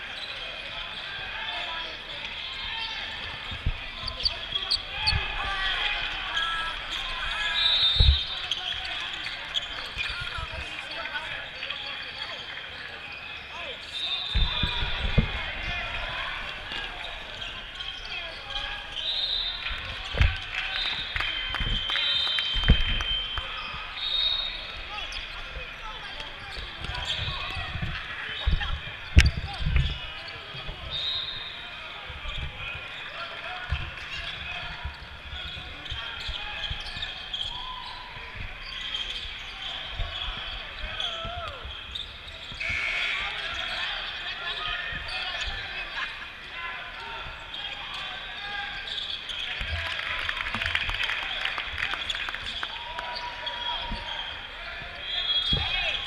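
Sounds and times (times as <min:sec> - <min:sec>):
people talking and calling out: 0:00.0 - 0:56.0.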